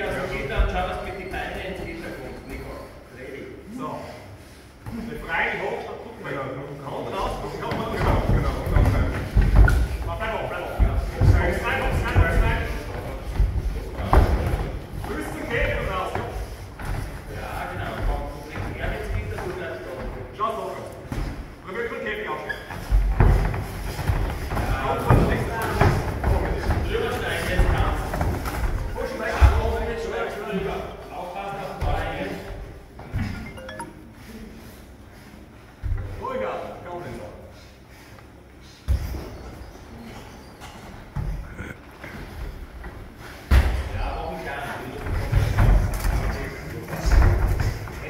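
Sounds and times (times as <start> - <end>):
thuds of bodies and blows on mat: 7.8 - 19.4, 22.8 - 30.0, 43.4 - 44.0.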